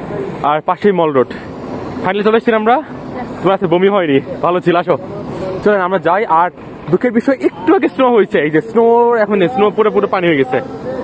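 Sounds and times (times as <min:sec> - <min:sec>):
low steady background noise: 0:00.0 - 0:11.0
person speaking: 0:02.1 - 0:11.0.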